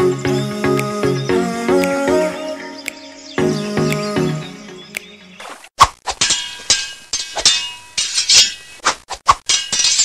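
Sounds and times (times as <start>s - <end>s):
sharp clanging hits: 6.1s - 8.8s.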